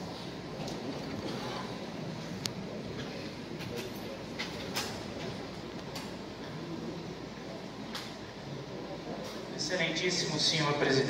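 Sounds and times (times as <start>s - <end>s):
faint murmur: 0.0s - 11.0s.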